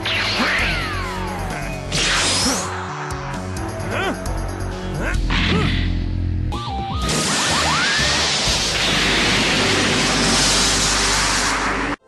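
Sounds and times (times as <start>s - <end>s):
soundtrack music: 0.0s - 12.0s
loud cartoon explosion: 7.1s - 12.0s.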